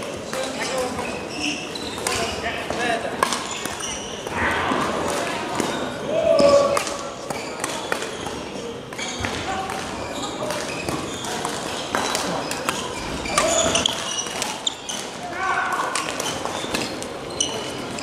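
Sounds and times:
indistinct voices in a hall: 0.0 - 18.0.

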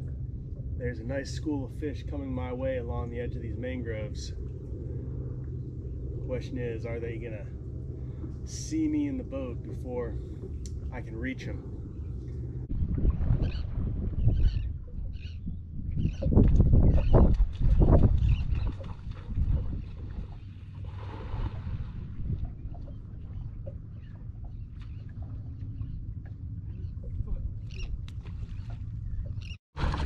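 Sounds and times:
water lapping against boat hull: 0.0 - 30.0
wind rumble: 0.0 - 30.0
distant cast net splash: 18.6 - 22.0, 29.8 - 30.0.

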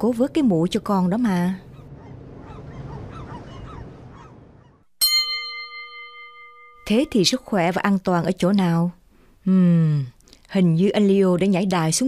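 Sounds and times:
distant voices: 0.0 - 4.9
bell-like chime ringing: 5.0 - 7.1.

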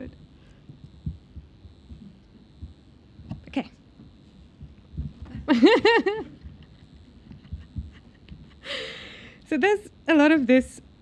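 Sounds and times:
faint room hum: 0.0 - 11.0
soft low thuds: 0.6 - 8.6.

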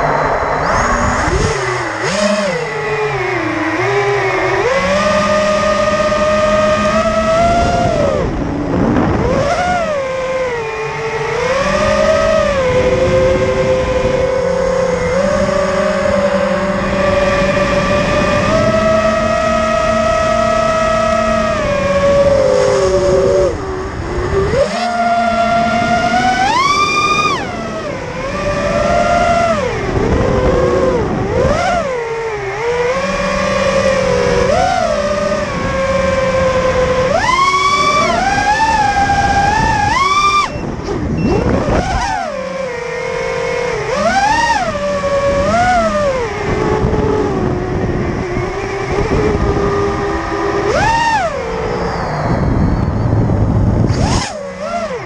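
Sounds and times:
drone motors whining: 0.0 - 55.0.

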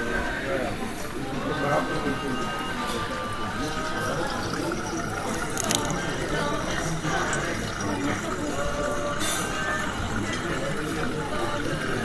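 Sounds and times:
water bubbling and trickling: 2.7 - 12.0.

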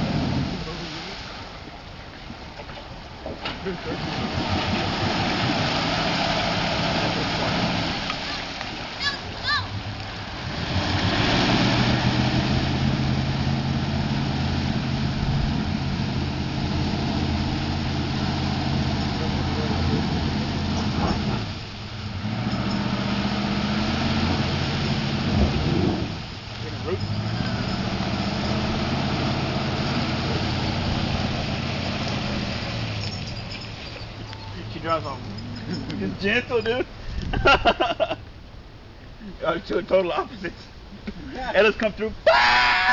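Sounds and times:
water and mud splashing: 0.0 - 38.1
truck engine revving: 3.6 - 8.6, 9.7 - 36.3.

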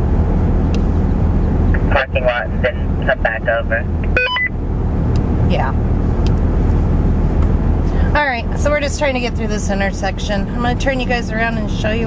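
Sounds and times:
diesel engine rumble inside cab: 0.0 - 12.0.

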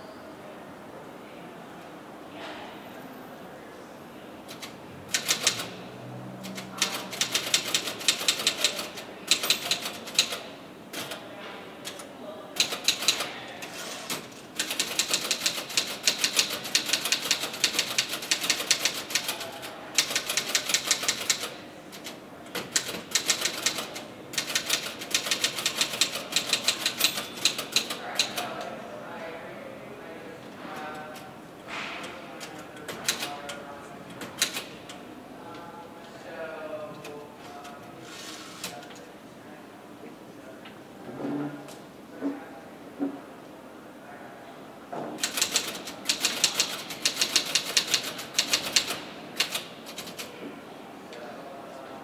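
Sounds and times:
typing on keyboard: 4.5 - 5.8, 6.4 - 11.2, 11.8 - 13.3, 14.1 - 28.7, 32.4 - 33.6, 34.2 - 34.7, 45.2 - 50.3.

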